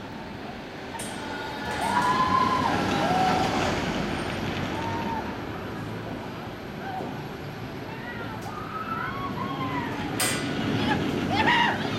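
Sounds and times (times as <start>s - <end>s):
roller coaster train on track: 0.0s - 11.9s.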